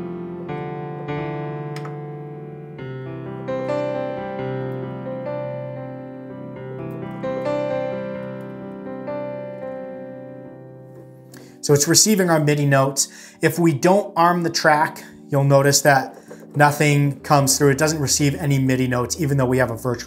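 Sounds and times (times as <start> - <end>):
piano chords: 0.0 - 20.0.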